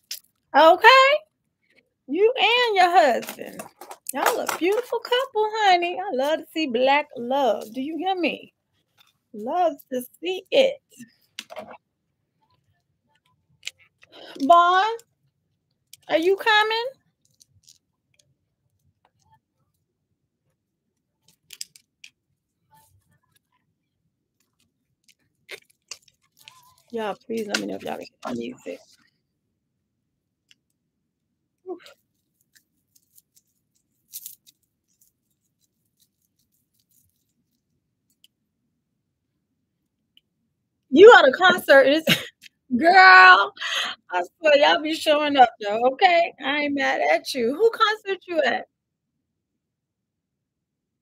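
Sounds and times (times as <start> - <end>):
handling noise of small items: 2.5 - 5.5, 11.0 - 11.8, 12.4 - 19.8, 20.5 - 29.2, 31.6 - 38.4.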